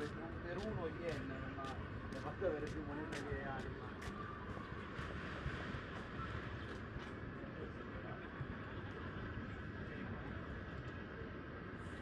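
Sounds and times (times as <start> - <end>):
footsteps on pavement: 0.0 - 4.2
low rumble of city noise: 0.0 - 12.0.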